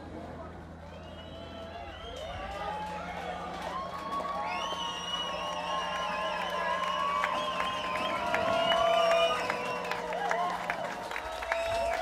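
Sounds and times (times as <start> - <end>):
audience cheering and whooping: 0.8 - 12.0
audience clapping: 1.5 - 12.0.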